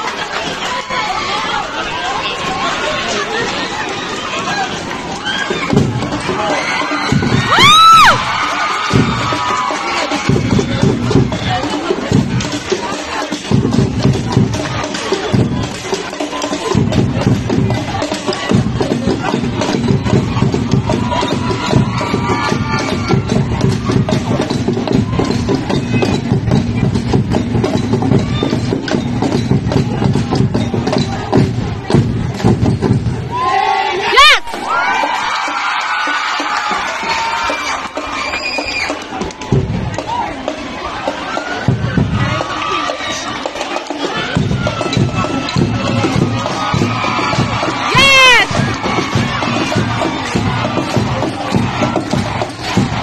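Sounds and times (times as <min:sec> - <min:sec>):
crowd cheering and shouting: 0:00.0 - 0:53.0
drums playing rhythm: 0:04.2 - 0:33.5, 0:34.1 - 0:53.0.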